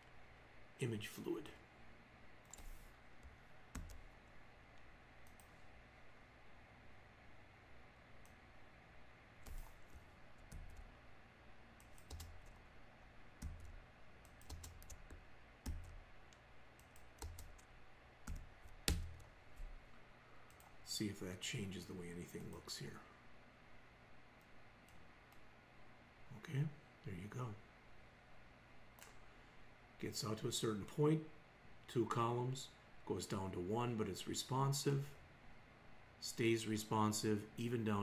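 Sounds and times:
keyboard and mouse clicking: 2.5s - 4.0s, 11.8s - 12.6s, 13.4s - 17.7s, 18.3s - 19.7s.

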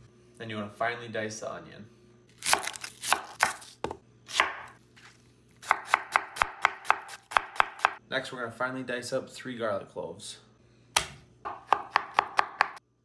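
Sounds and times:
knife chopping on wooden board: 2.4s - 4.7s, 5.6s - 8.0s, 11.0s - 12.8s
knife slicing onion on board: 2.4s - 4.8s, 5.6s - 8.0s, 11.0s - 12.8s.

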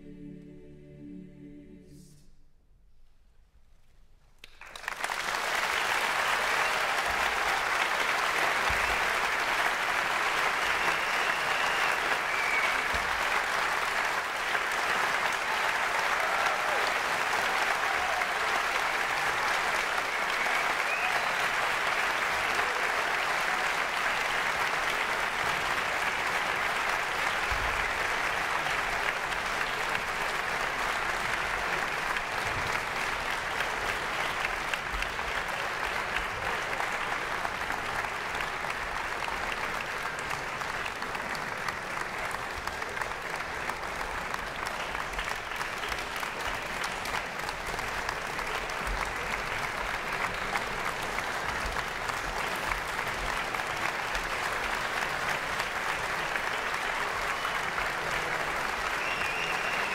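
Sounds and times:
audience applauding: 4.4s - 59.9s.

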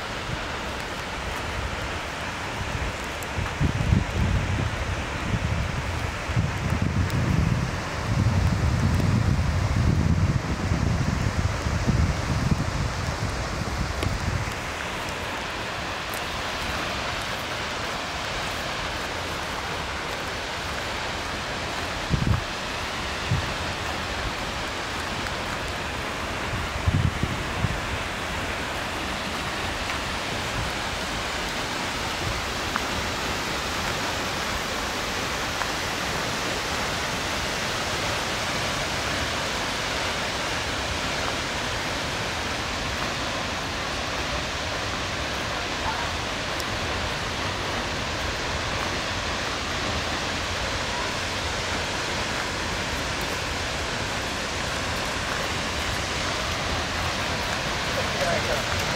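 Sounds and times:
waterfall rushing: 0.0s - 58.9s.

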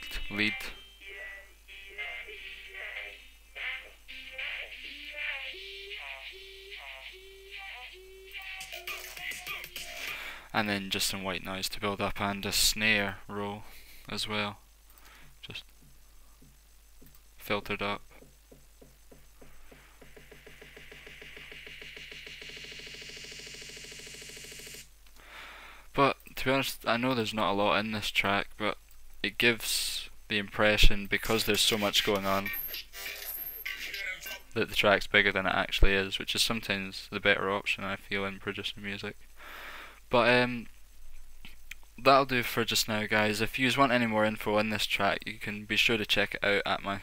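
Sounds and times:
synthesized snare roll: 20.0s - 23.3s.

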